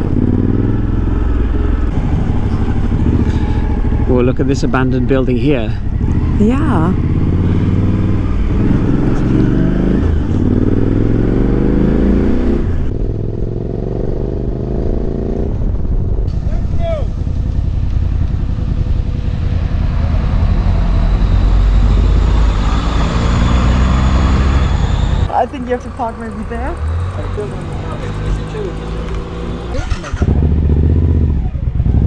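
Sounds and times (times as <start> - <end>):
motorcycle engine running: 0.0 - 22.2, 24.9 - 32.0.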